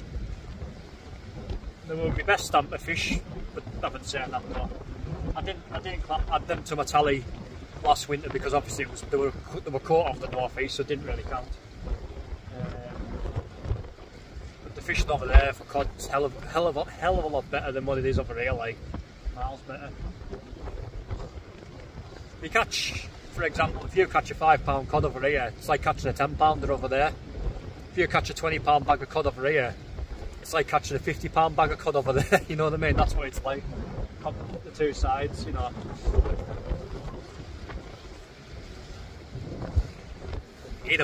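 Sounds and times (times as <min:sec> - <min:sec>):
choppy sea wash: 0:00.0 - 0:41.0
wind buffeting microphone: 0:00.0 - 0:41.0.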